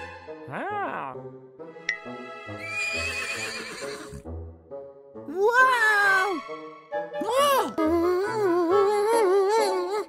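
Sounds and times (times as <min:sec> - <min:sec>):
light children's music: 0:00.0 - 0:10.0
horse whinnying: 0:02.6 - 0:04.2.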